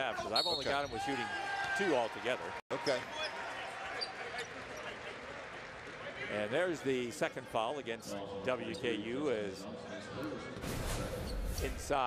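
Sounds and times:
murmur of arena crowd: 0.0 - 12.0.

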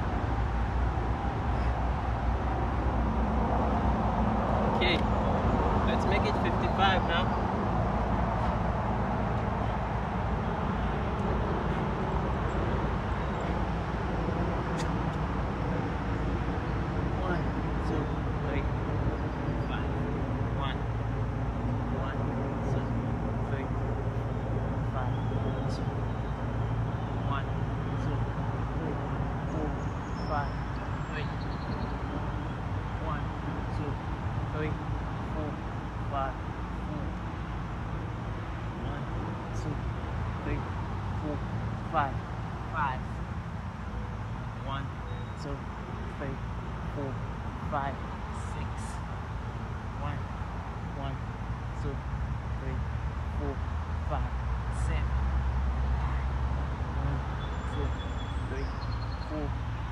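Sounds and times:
distant road traffic rumble: 0.0 - 59.9.

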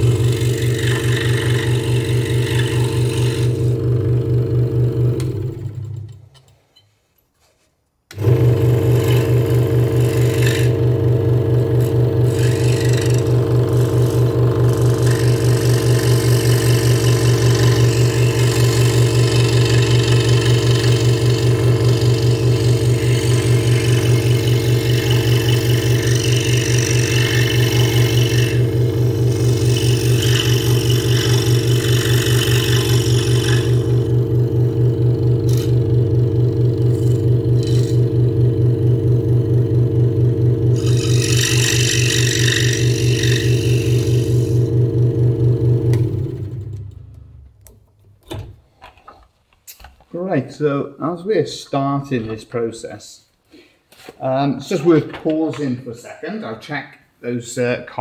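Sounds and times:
scroll saw cutting wood: 0.0 - 4.1, 8.1 - 47.0.

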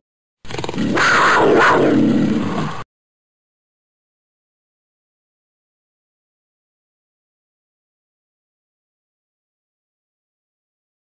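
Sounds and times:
big cat roaring: 0.5 - 2.8.

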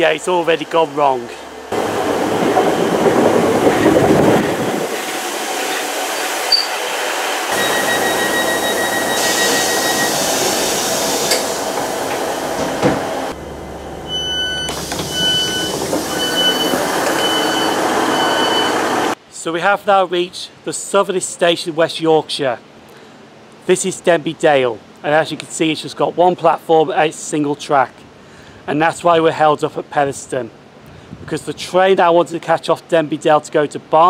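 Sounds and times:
diesel train running: 0.0 - 19.2
door-warning beeps: 7.5 - 10.5, 14.0 - 19.2.

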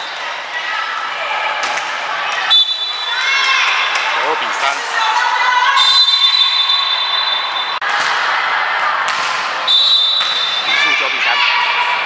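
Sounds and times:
players and spectators shouting: 0.0 - 12.0
referee's whistle: 2.5 - 3.2, 5.8 - 7.8, 9.6 - 10.9.

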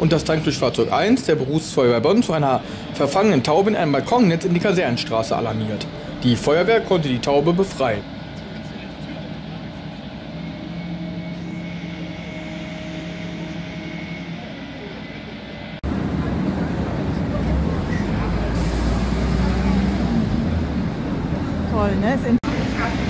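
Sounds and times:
diesel engine running: 0.0 - 23.0
street noise: 0.0 - 23.0
faint high whine: 2.2 - 15.8.

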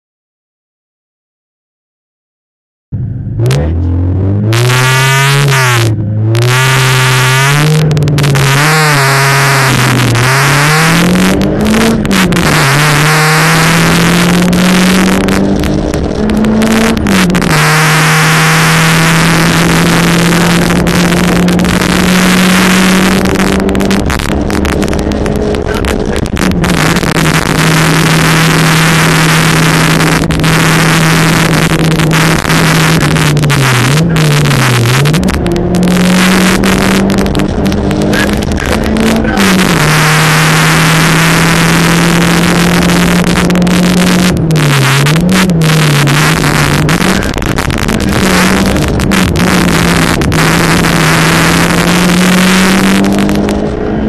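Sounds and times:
road and wind noise: 2.9 - 54.0
car engine at high revs: 3.0 - 54.0.

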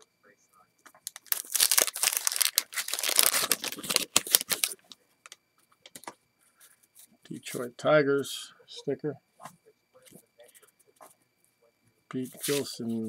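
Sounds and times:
plastic wrapper tearing and crinkling: 1.0 - 4.8.

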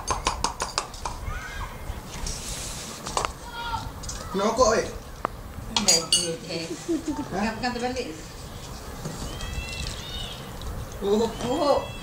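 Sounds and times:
cutlery clinking on crockery: 5.8 - 6.4.

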